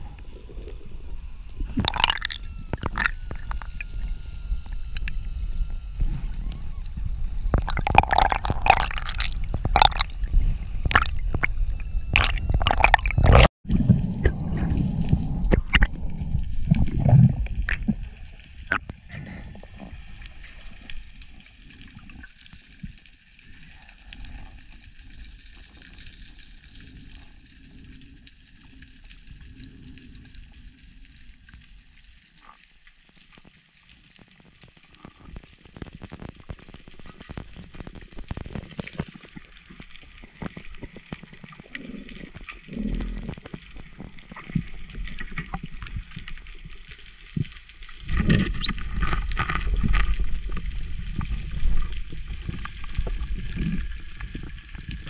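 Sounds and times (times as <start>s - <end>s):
underwater water hiss: 0.0s - 13.2s
clicks and crackles: 0.0s - 55.0s.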